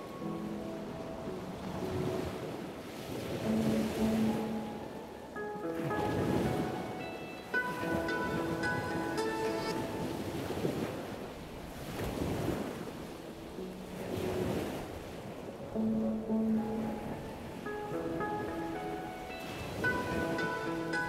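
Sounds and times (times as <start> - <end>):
soft music tones: 0.0 - 11.7, 13.0 - 21.0
sea surf washing up beach: 0.0 - 21.0.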